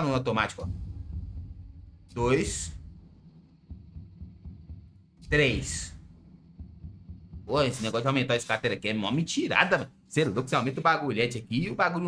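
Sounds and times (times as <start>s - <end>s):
dark pulsing game music: 0.0s - 8.6s.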